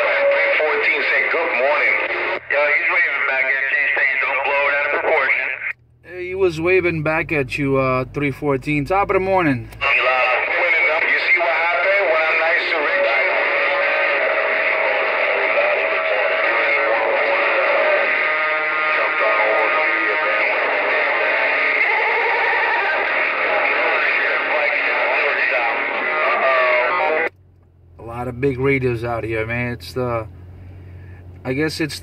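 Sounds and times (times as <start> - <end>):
distorted radio voices: 0.0 - 27.3.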